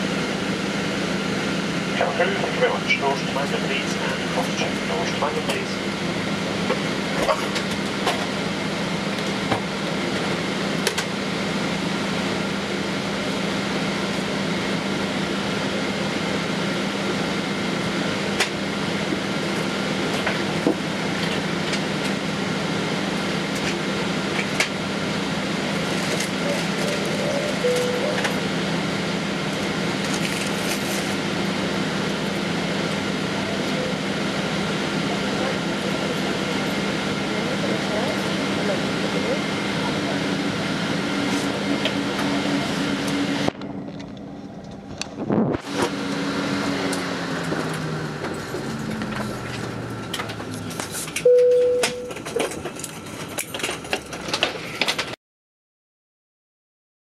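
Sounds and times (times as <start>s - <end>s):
air conditioning rush: 0.0s - 51.3s
low steady hum: 27.0s - 28.6s
faint high tones: 27.6s - 28.4s.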